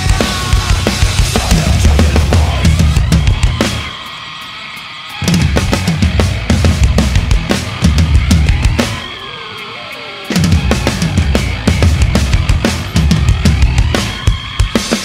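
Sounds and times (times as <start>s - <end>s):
drum kit played hard: 0.0s - 9.3s, 10.2s - 15.0s
heavy rock backing track: 0.0s - 15.0s.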